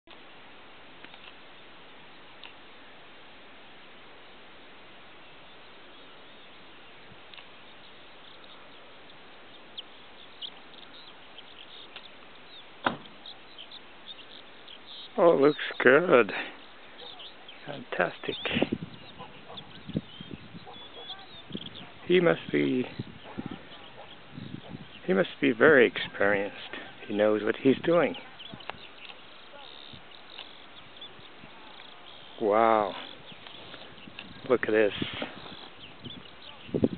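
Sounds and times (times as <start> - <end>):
steady low hiss: 0.1 - 36.9
high bird chirps: 5.5 - 25.2, 27.1 - 36.9.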